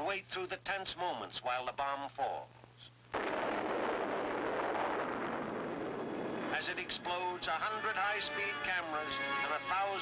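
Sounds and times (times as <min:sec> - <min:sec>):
atomic bomb blast rush: 0:03.1 - 0:07.6.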